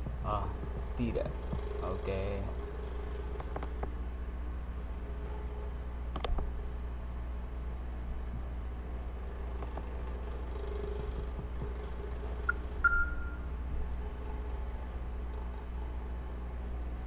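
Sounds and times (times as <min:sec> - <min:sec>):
low electrical hum: 0:00.0 - 0:17.0
short high beeps: 0:12.8 - 0:13.4.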